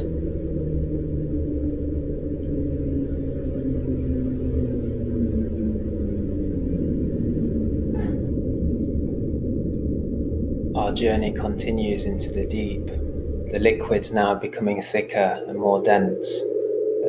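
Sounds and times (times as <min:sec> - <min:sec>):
low tones sliding down in pitch: 0:00.0 - 0:14.6
muffled rumbling drone: 0:00.0 - 0:17.0.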